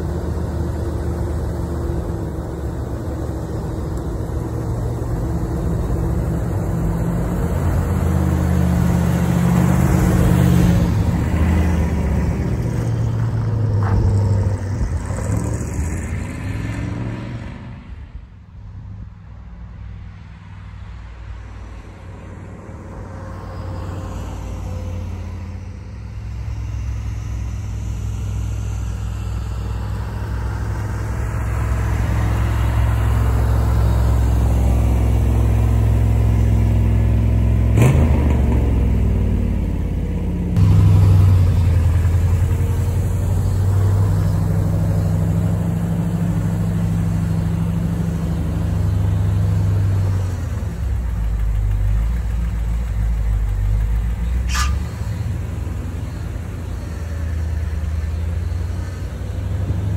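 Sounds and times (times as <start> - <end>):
car engine running: 25.3 - 59.9.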